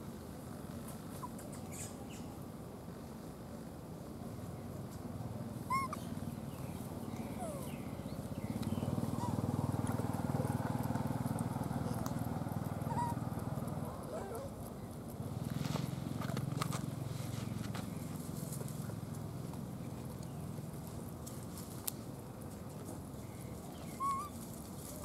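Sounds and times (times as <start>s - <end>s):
high chirping calls: 5.7s - 9.8s.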